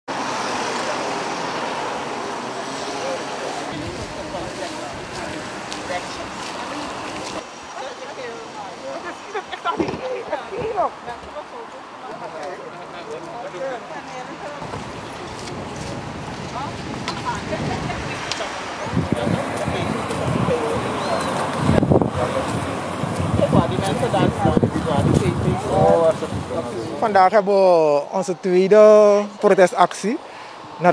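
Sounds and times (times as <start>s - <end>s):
passing cars rushing: 0.1s - 30.9s
faint voices: 0.5s - 30.9s
wind buffeting microphone: 3.7s - 6.4s, 14.6s - 27.1s
bird calling: 20.9s - 21.5s.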